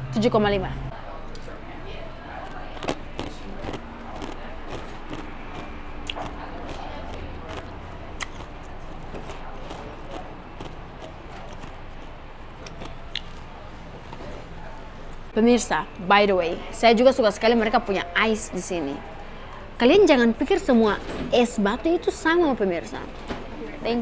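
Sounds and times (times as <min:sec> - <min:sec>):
murmur of distant voices: 0:00.0 - 0:24.0.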